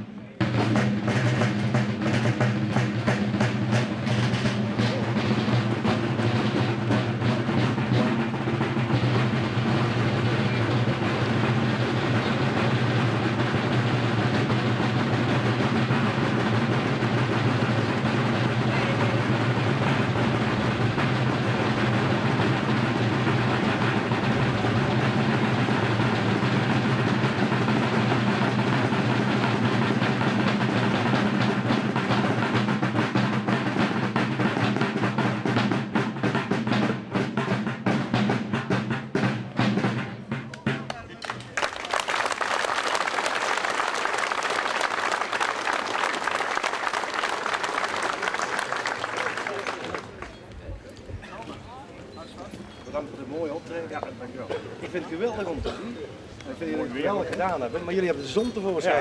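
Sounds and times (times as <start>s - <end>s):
field drum roll: 0.0s - 59.0s.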